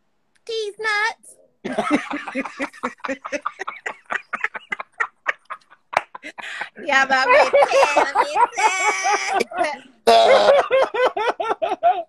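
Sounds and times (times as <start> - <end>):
people laughing hard: 1.7 - 12.0.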